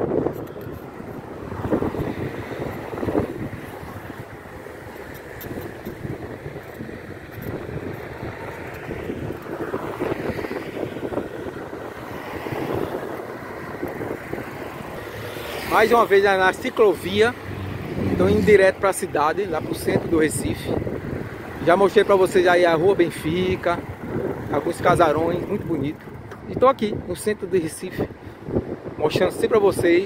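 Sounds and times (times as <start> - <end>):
road traffic rumble: 0.0 - 30.0
wind buffeting microphone: 0.0 - 30.0.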